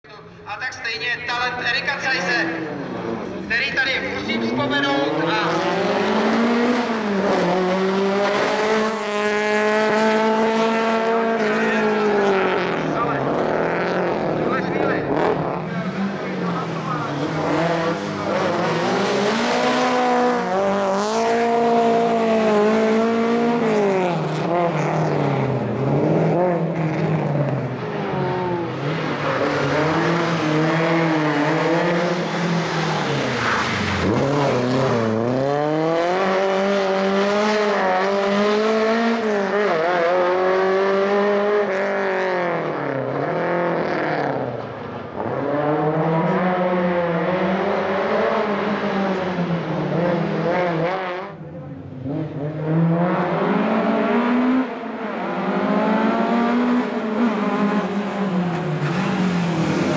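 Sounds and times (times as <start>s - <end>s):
rally car engine revving: 1.9s - 59.9s.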